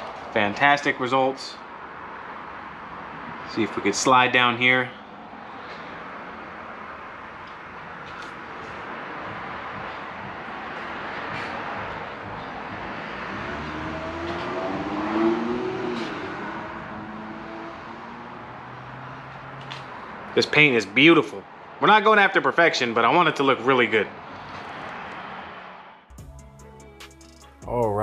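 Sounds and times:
road traffic passing: 0:00.0 - 0:27.4.

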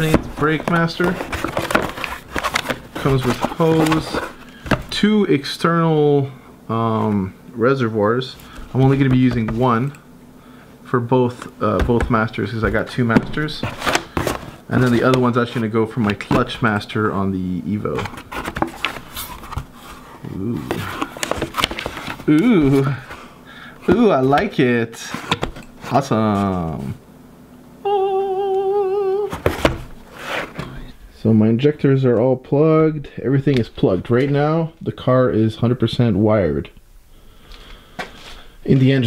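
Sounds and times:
cardboard box being opened: 0:00.0 - 0:05.0, 0:13.1 - 0:15.6
cardboard and paper rustling: 0:00.0 - 0:05.1, 0:08.4 - 0:09.9, 0:11.3 - 0:16.8, 0:17.8 - 0:23.2, 0:23.8 - 0:26.9, 0:29.3 - 0:30.9
person humming: 0:20.2 - 0:21.0, 0:22.2 - 0:23.0, 0:27.8 - 0:29.5.

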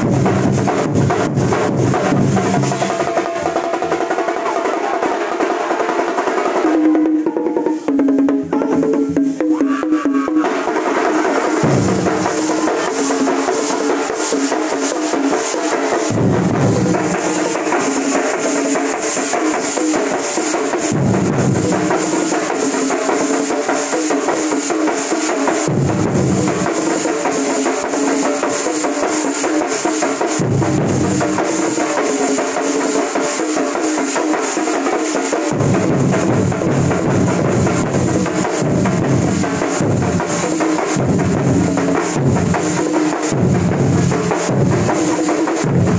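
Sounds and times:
deep booming drum beats: 0:00.0 - 0:45.9
drum ensemble beating fast: 0:00.0 - 0:45.9.

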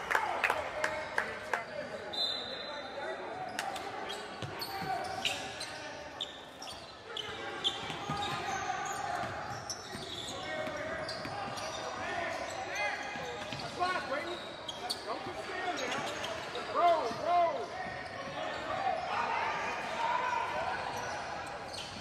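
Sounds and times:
voices of players and spectators: 0:00.0 - 0:22.0
sneakers squeaking on court: 0:03.5 - 0:19.1, 0:20.7 - 0:22.0.

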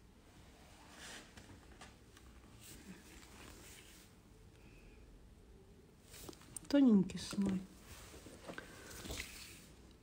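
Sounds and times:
faint small clicks and rustles: 0:06.0 - 0:10.0.

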